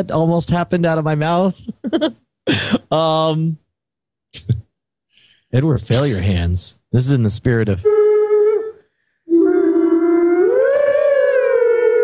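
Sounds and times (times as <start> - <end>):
long howl: 7.9 - 12.0.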